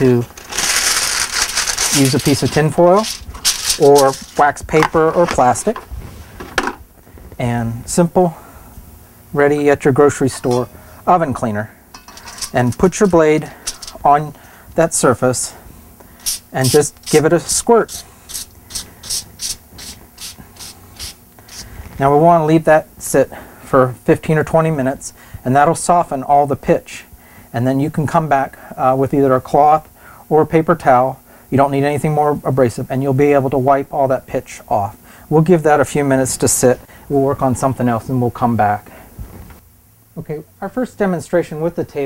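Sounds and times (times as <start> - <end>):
aluminium foil crinkling: 0.0 - 4.6, 12.2 - 14.0
spray bottle hisses: 16.2 - 17.2, 17.9 - 21.7.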